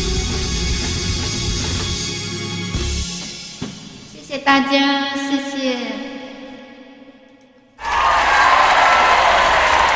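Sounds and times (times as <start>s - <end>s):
crowd cheering and applause: 7.8s - 9.9s.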